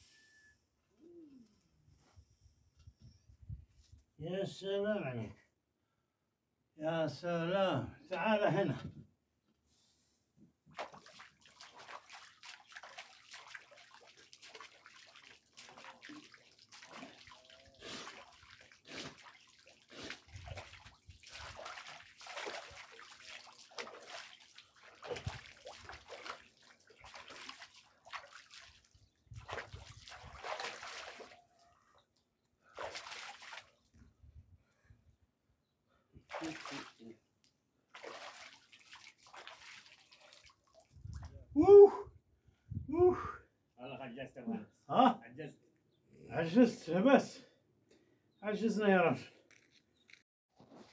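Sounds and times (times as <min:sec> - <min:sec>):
water splashing onto face: 0:10.7 - 0:31.4, 0:32.7 - 0:33.7, 0:36.3 - 0:37.0, 0:37.9 - 0:41.3
water trickling into pool: 0:10.7 - 0:31.8, 0:32.6 - 0:34.0, 0:36.3 - 0:37.1, 0:37.8 - 0:41.4.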